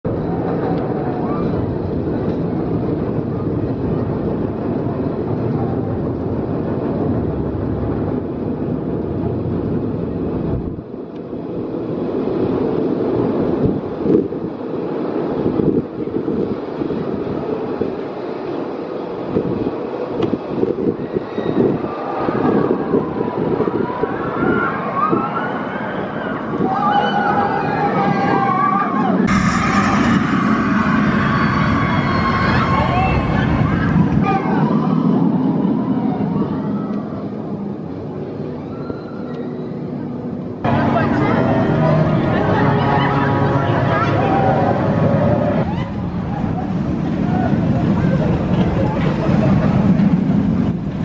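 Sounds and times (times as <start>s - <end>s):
roller coaster clattering: 0.1s - 38.5s, 40.6s - 51.0s
roller coaster chain lift rumble: 0.1s - 51.0s
riders screaming: 24.2s - 29.7s.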